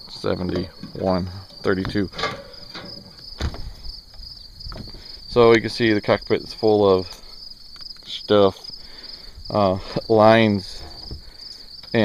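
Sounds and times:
insects trilling: 0.0 - 12.0
dull thump: 1.8 - 5.0.

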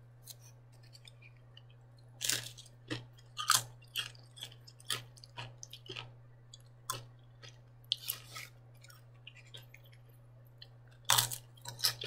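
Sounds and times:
chip crunching while chewed: 0.2 - 12.0.

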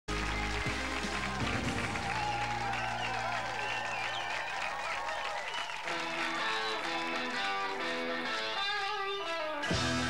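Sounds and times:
band playing: 0.1 - 3.8, 5.9 - 10.0
audience applauding and cheering: 0.1 - 9.2.

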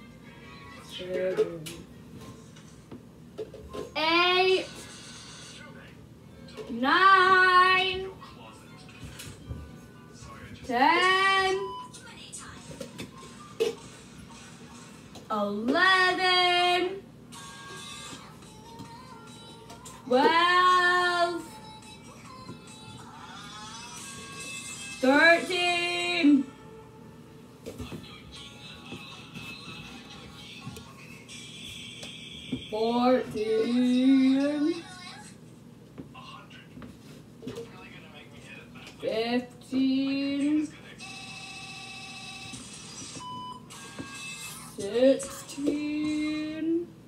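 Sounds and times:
faint background music: 0.0 - 47.0
young female voice singing: 18.0 - 26.5, 32.7 - 35.2, 44.7 - 47.0.

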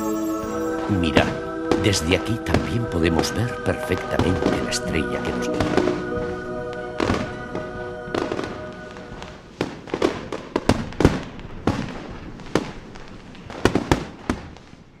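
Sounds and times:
background music: 0.0 - 9.6
fireworks bangs: 5.5 - 14.8.

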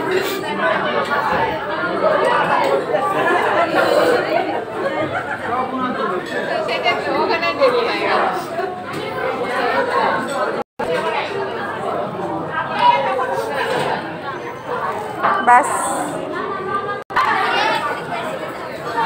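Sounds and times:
babble of diners: 0.0 - 19.0.

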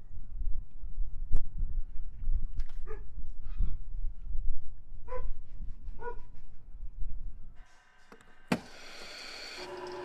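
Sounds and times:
wind buffeting microphone: 0.1 - 7.6.

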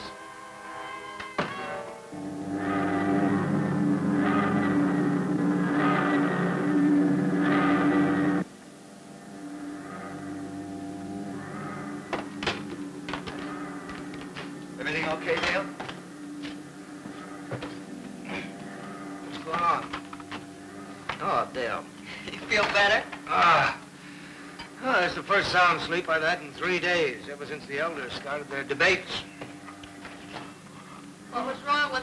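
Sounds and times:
loud humming chord: 0.0 - 31.9
quiet steady hum: 1.8 - 32.0.

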